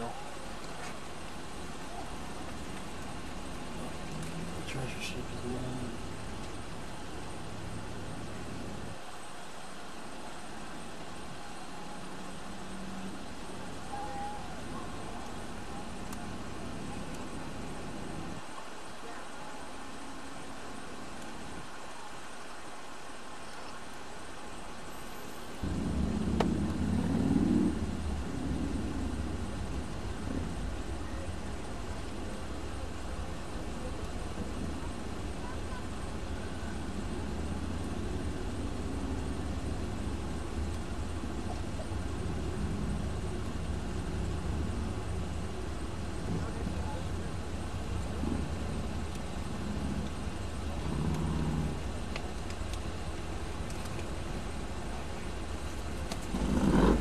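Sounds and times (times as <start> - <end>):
rumble of road traffic: 0.0 - 57.0.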